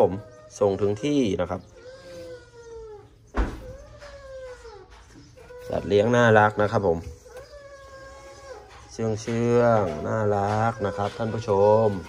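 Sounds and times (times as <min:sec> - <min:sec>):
bamboo rat whining calls: 0:00.0 - 0:12.0.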